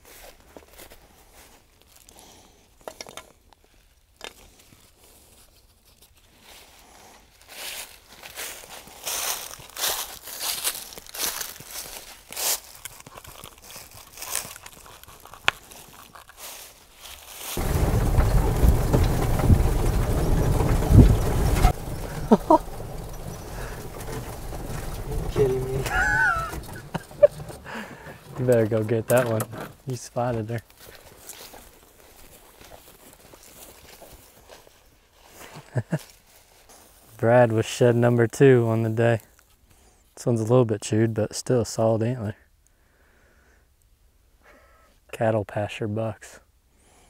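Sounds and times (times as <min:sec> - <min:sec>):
strap and buckle rustling: 0:10.8 - 0:17.5
buggy engine rumble: 0:17.6 - 0:30.6
person speaking: 0:23.4 - 0:30.6.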